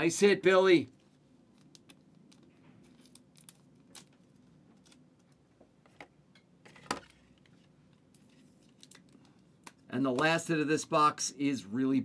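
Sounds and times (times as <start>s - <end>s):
trading cards being handled: 1.0s - 6.1s.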